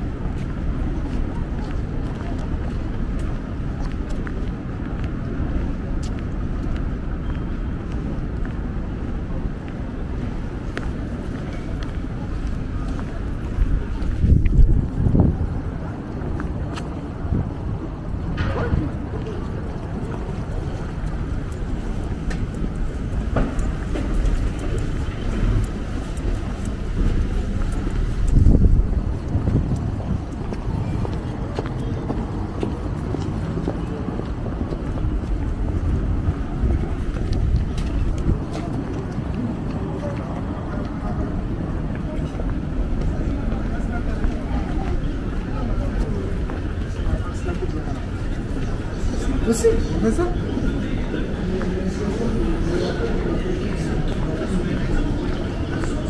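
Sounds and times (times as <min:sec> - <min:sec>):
indistinct voices of passers-by: 0:00.0 - 0:56.0.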